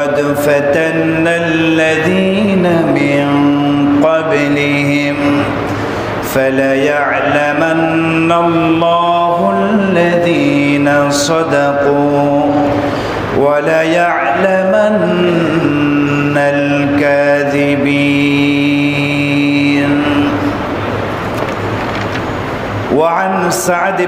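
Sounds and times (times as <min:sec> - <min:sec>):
man chanting melodically: 0:00.0 - 0:20.7, 0:22.8 - 0:24.0.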